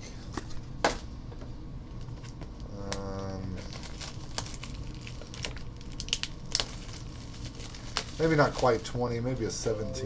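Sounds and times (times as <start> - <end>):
foil wrapper crinkling and tearing: 2.2 - 9.6.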